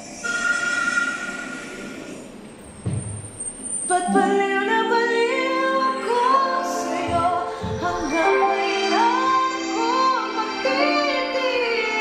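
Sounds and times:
karaoke backing track: 3.8 - 12.0.

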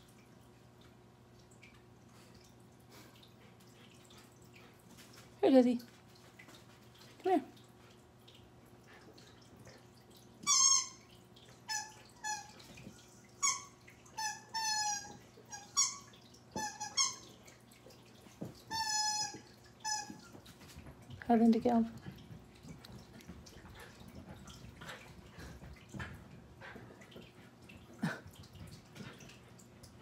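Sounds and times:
squeaky toy squeaks: 10.4 - 11.0, 13.4 - 17.2, 18.7 - 20.2.

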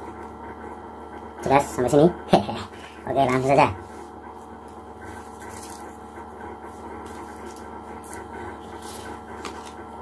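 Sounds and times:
steady low hum: 0.0 - 10.0
paper rustling and tapping: 7.0 - 9.8.

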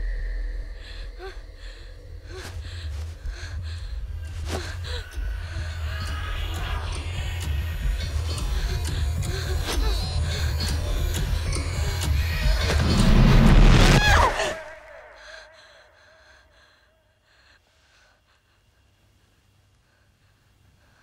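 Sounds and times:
low droning horror music: 0.0 - 21.0.

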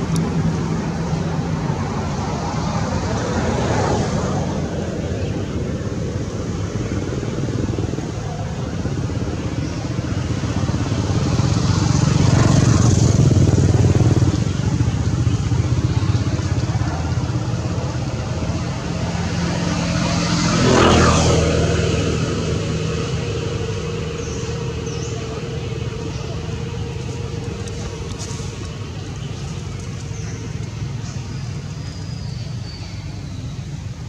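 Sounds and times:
motor vehicles passing: 0.0 - 34.0.

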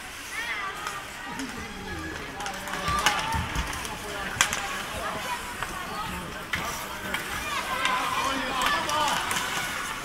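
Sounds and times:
hockey sticks and puck clicking: 0.8 - 10.0.

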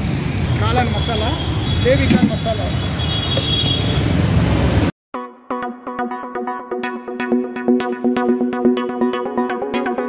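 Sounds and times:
traffic rumble and hiss: 0.0 - 4.9.

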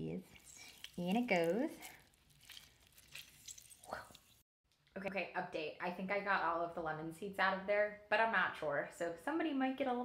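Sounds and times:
juice dripping: 0.2 - 4.4
lemon squished by hand: 0.3 - 4.4.

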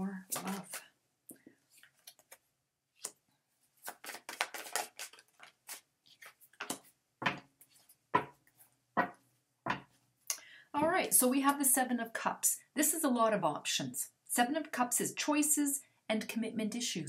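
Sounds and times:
cards being shuffled: 0.3 - 0.9, 1.7 - 3.2, 3.8 - 8.3.

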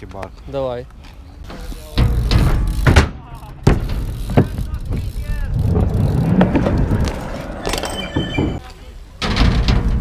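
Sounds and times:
bike striking concrete ledge: 1.5 - 8.6
tyres rumbling over concrete: 2.0 - 8.6.

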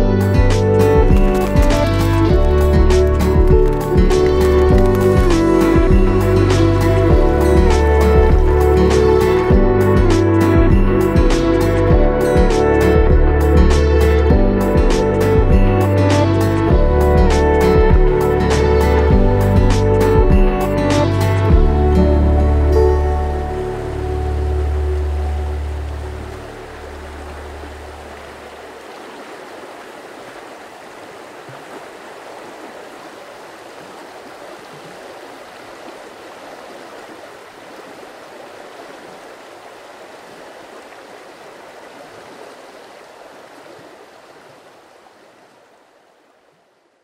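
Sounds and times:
background music: 0.0 - 28.2
river water flowing: 0.0 - 47.0.

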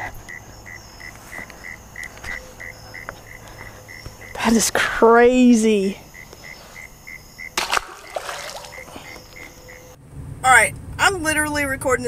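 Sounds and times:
insect chirping: 0.0 - 10.0
fish splashing into water: 7.5 - 9.4.

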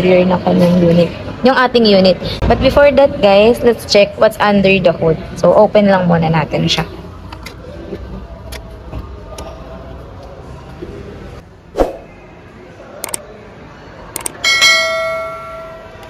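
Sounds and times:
short clicks: 14.2 - 14.4
bell ding: 14.4 - 16.0.

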